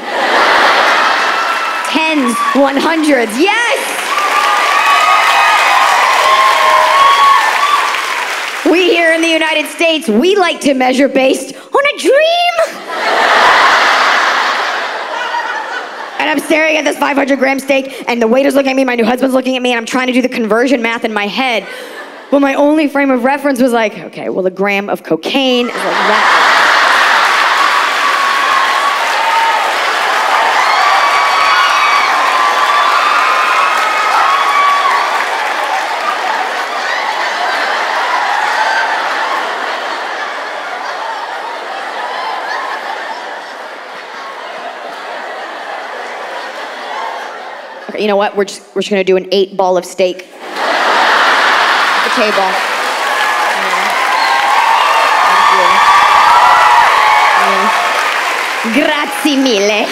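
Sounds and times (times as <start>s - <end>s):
audience laughing: 0.0s - 3.3s, 12.7s - 17.0s, 25.6s - 30.5s, 36.0s - 47.9s, 50.4s - 54.1s
audience applauding: 0.0s - 9.6s, 25.8s - 47.8s, 50.4s - 59.9s
whoops: 3.7s - 8.1s, 27.7s - 35.2s, 53.0s - 58.1s.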